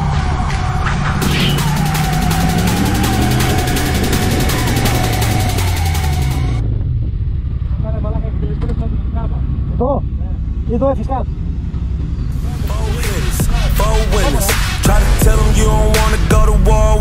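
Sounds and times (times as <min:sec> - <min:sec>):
music with steady beat: 0:00.0 - 0:06.6, 0:12.4 - 0:17.0
motorcycle engine and wind rumble: 0:06.6 - 0:12.4
man's voice: 0:12.4 - 0:17.0.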